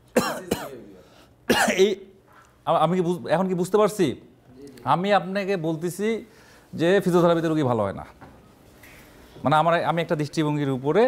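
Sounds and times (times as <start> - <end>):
man coughing: 0.2 - 2.0.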